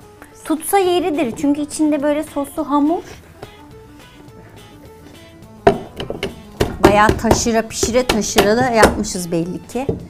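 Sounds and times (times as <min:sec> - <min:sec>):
metal pot thud on wooden counter: 0:05.7 - 0:07.5.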